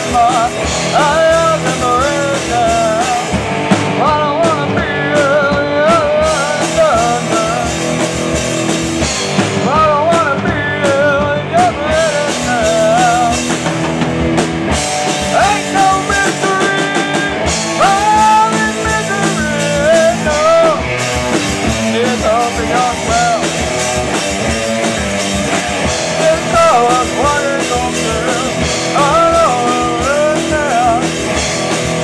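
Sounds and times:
person singing: 0:00.0 - 0:08.2, 0:09.3 - 0:13.8, 0:15.1 - 0:32.0
drum kit: 0:00.0 - 0:32.0
electric guitars: 0:00.0 - 0:32.0.

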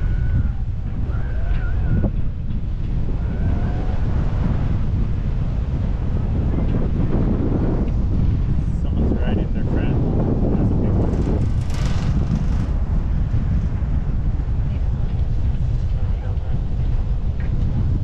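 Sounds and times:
wind buffeting microphone: 0:00.0 - 0:18.0.

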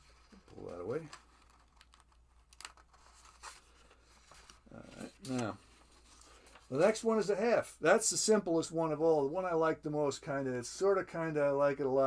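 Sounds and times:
paper rustling: 0:00.0 - 0:07.0.

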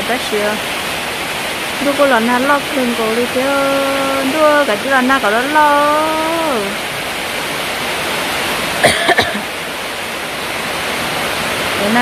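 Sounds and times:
person speaking: 0:01.8 - 0:06.8
person coughing: 0:08.8 - 0:09.5.

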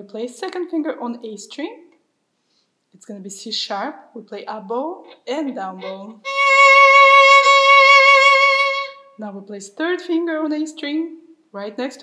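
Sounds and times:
violin bowed note: 0:05.8 - 0:09.2.

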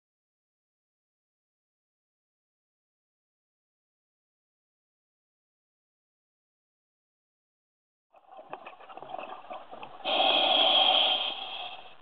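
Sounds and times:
underwater rush of bubbles: 0:08.2 - 0:12.0.

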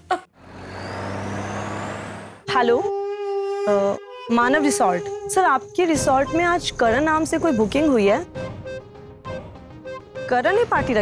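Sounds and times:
vehicle engines and road noise: 0:00.2 - 0:02.5.

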